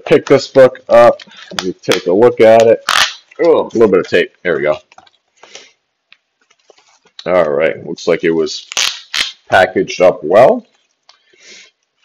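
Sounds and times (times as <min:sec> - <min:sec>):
packaging rustle: 0:06.3 - 0:07.2.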